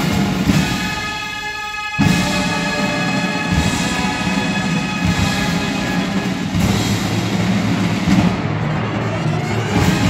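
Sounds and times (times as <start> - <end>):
brass chord: 0.0 - 7.4
drum kit playing: 0.0 - 8.9
snare drums: 0.0 - 10.0
timpani: 0.0 - 10.0.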